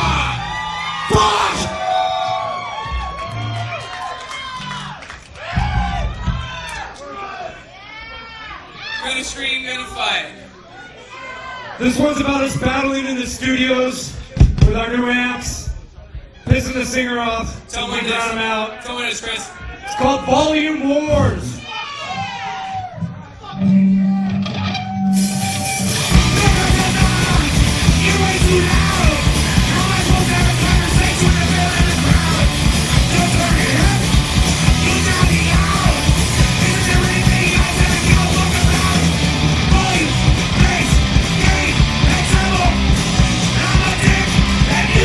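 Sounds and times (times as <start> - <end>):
punk rock band playing: 0.0 - 1.8, 23.6 - 45.0
people yelling and shouting: 0.0 - 45.0
whoops: 0.2 - 6.9
person yelling vocals: 1.1 - 1.8, 26.1 - 42.8.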